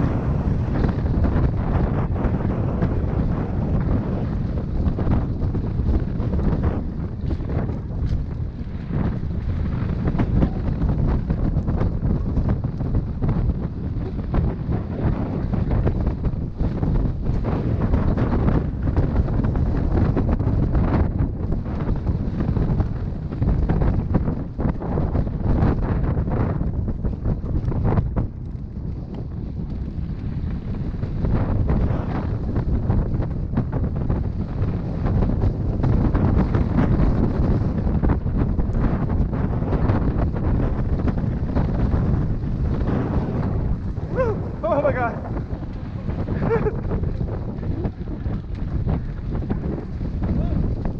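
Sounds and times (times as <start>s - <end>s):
bike knocking and rattling: 0.0s - 44.0s, 44.6s - 50.9s
tyres rumbling on dirt: 0.0s - 50.9s
wind rushing over microphone: 0.0s - 50.9s.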